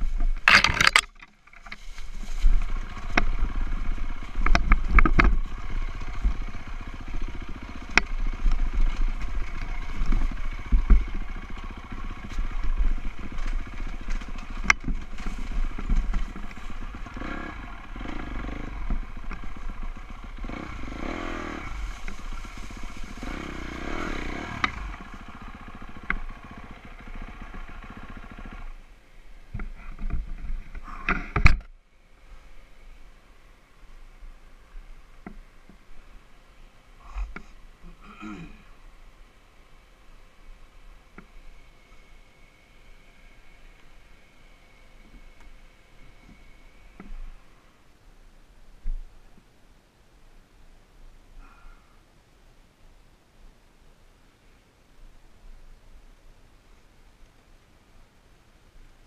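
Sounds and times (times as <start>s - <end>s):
bike knocks and rattles: 0.1s - 17.4s
dirt bike engine revving: 2.4s - 28.8s.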